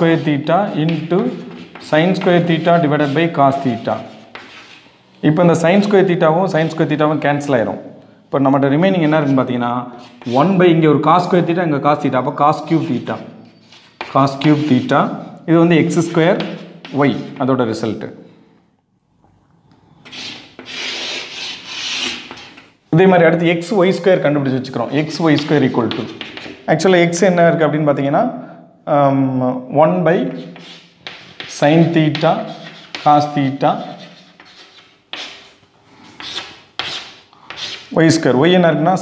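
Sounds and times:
duster rubbing chalkboard: 0.0s - 4.9s, 15.9s - 17.4s, 20.0s - 22.7s, 25.0s - 26.7s, 30.4s - 37.9s.

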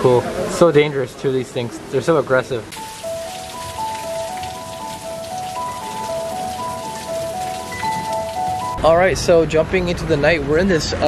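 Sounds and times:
hiss of falling water: 2.7s - 8.8s
simple melody of held notes: 2.7s - 8.8s.

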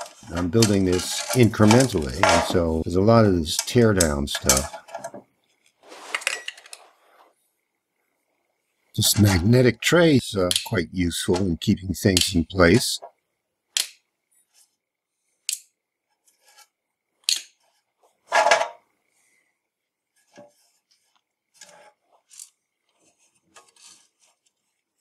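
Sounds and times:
screws clinking into metal tray: 0.0s - 2.7s, 3.5s - 4.9s
metal parts rattling: 0.0s - 5.2s.

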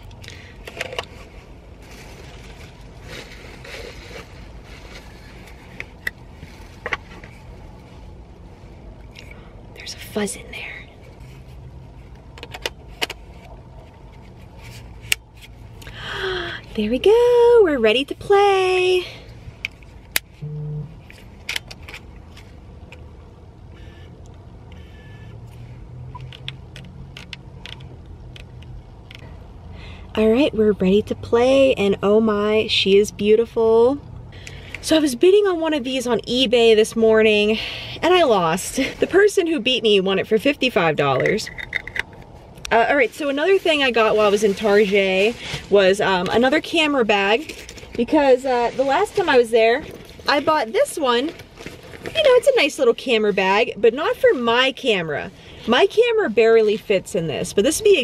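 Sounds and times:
low hum inside car: 0.0s - 58.0s
low steady rumble: 0.0s - 58.0s
lens caps scraping and clicking: 41.2s - 42.4s.

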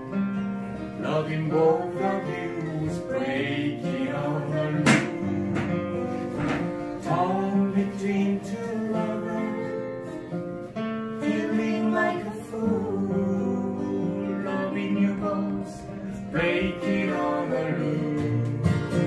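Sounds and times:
acoustic guitars strummed: 0.0s - 19.0s
man and woman singing: 1.0s - 10.4s, 11.1s - 19.0s.

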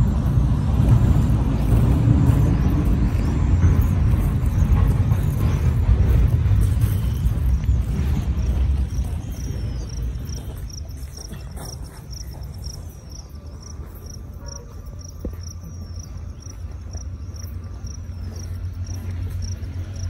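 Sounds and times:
low wind rumble on microphone: 0.0s - 13.3s
cricket chirping: 0.0s - 20.0s.

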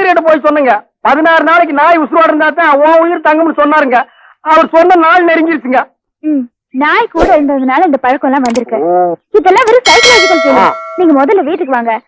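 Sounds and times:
sharp metallic clang ringing: 9.8s - 11.4s.

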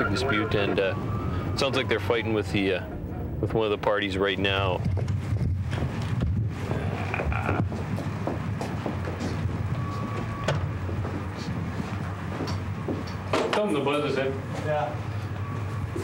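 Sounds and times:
footsteps of people walking: 4.7s - 16.0s
brief steady tone: 9.7s - 10.6s, 15.1s - 16.0s.

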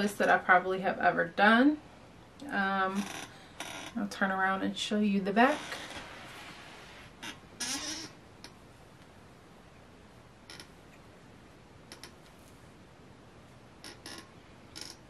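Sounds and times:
short creak: 2.9s - 4.0s, 5.5s - 8.6s, 10.5s - 10.8s, 11.9s - 12.3s, 13.8s - 15.0s.

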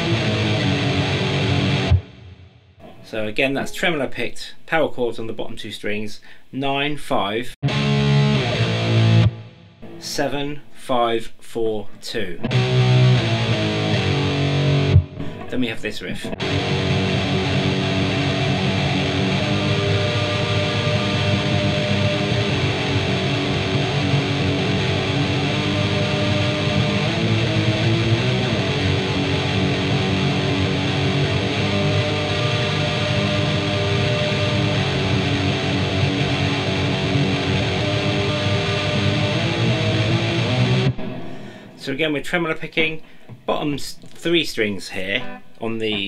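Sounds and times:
distorted electric guitar riff: 0.0s - 3.8s, 7.6s - 10.7s, 12.3s - 42.1s, 45.0s - 46.0s.

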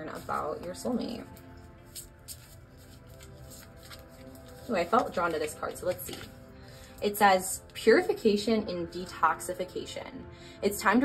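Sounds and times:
quiet background music: 0.0s - 11.0s
cards being shuffled: 1.2s - 6.4s.

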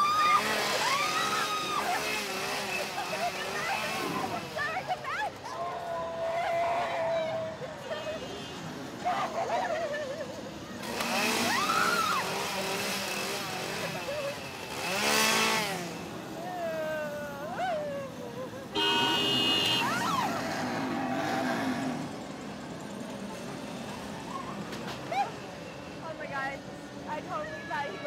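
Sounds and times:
chainsaw engine revving: 0.0s - 4.6s, 10.8s - 16.2s
people yelling and shrieking: 0.0s - 8.2s, 9.0s - 10.3s, 11.2s - 12.8s, 16.4s - 18.7s, 19.6s - 21.4s.

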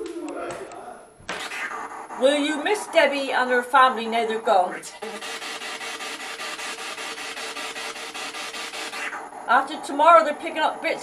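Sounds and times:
rhythmic rasping noise: 0.0s - 11.0s.

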